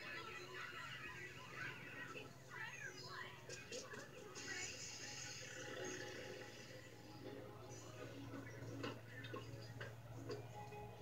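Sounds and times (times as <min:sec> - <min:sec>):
cartoon music on television: 0:00.0 - 0:11.0
faint voices: 0:00.0 - 0:11.0.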